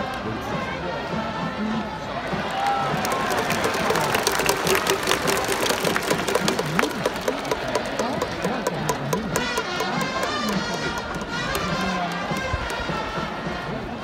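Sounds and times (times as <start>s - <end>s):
fast sharp beats: 2.8s - 13.6s
trumpets playing: 9.4s - 14.0s.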